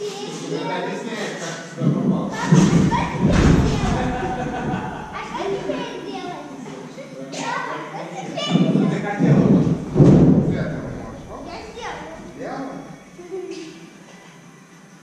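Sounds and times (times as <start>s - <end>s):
background voices talking: 1.7s - 6.1s, 8.4s - 13.0s
thuds on a trampoline: 1.8s - 5.8s, 8.5s - 12.3s.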